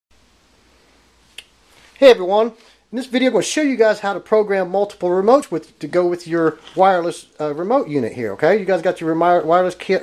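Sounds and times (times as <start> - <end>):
faint room hiss: 0.1 - 10.0.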